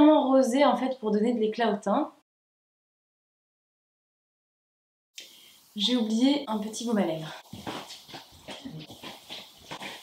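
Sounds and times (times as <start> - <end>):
clothes rustling: 7.0 - 10.0
bare footsteps on floor: 7.2 - 10.0.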